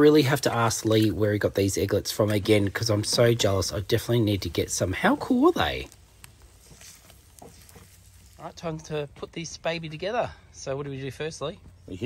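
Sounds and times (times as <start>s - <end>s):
soft steady hiss: 0.0s - 12.0s.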